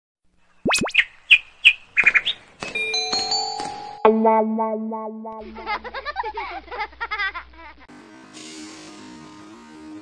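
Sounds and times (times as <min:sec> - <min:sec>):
bird chirps and trill: 0:00.6 - 0:02.5
ringing chime notes: 0:02.8 - 0:05.4.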